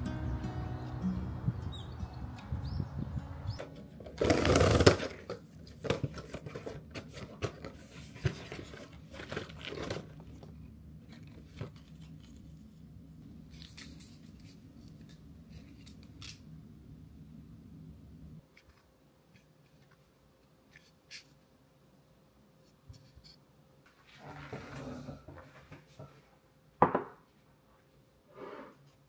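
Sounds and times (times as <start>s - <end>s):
cardboard and paper packets rustling: 3.6s - 12.8s
cardboard box tearing open: 4.0s - 7.6s.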